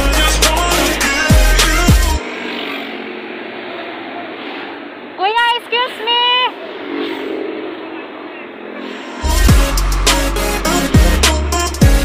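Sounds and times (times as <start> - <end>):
steady rushing noise: 0.0 - 12.0
people arguing: 5.2 - 6.6.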